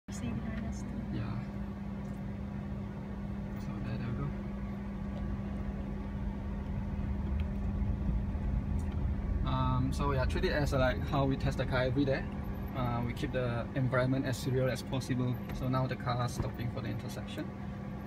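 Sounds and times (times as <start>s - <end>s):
low road rumble: 0.0s - 18.0s
electric car low hum: 0.1s - 18.0s.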